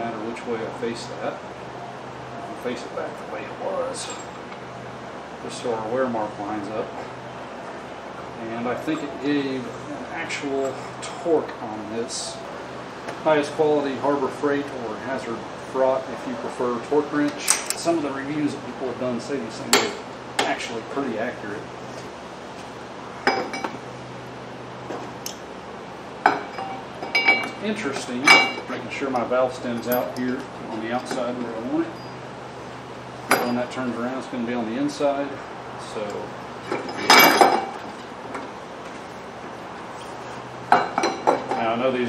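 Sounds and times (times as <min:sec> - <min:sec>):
metal tools clinking: 0:03.9 - 0:04.4, 0:26.2 - 0:32.3, 0:33.3 - 0:33.8, 0:36.0 - 0:38.1.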